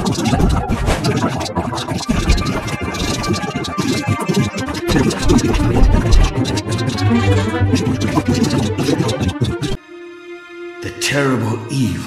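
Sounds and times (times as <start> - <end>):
background music: 0.9 - 12.0.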